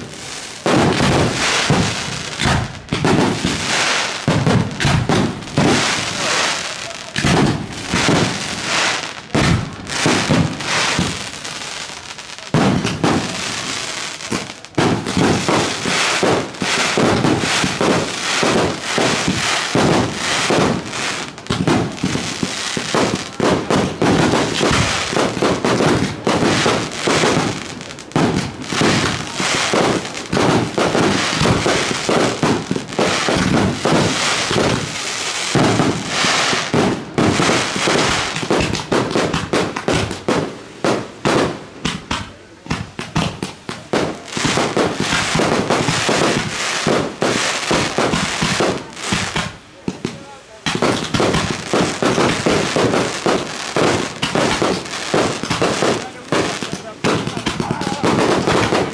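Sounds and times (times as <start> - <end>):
fireworks bangs: 0.0 - 58.9.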